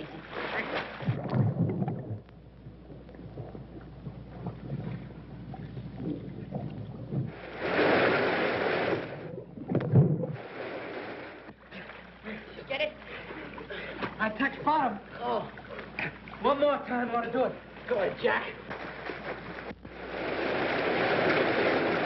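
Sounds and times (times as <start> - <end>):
water splashing and churning: 0.0 - 2.3, 2.9 - 14.3, 18.6 - 22.0
muffled underwater rumble: 0.0 - 7.6, 8.9 - 10.6
heavy splash or thud: 7.3 - 9.2
rush of draining water: 20.0 - 22.0.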